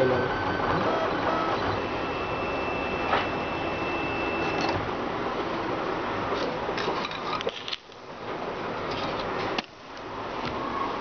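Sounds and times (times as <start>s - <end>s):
thin high whine: 0.0s - 4.9s
printer motors whirring: 0.0s - 5.0s.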